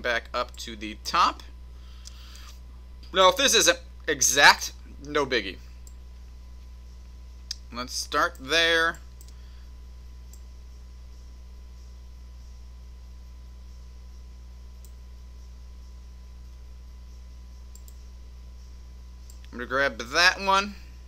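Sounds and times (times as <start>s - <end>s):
steady low hum: 0.0s - 21.0s
faint computer mouse clicks: 9.2s - 9.4s, 17.7s - 18.0s.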